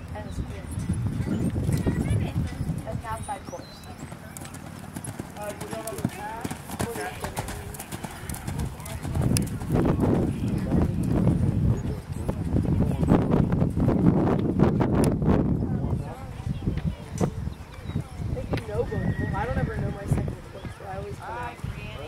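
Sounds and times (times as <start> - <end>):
horse hooves thudding on sand: 1.7 - 11.5.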